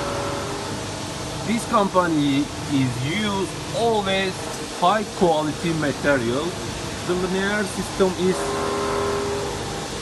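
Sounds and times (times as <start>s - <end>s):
motor whine: 8.3s - 10.0s.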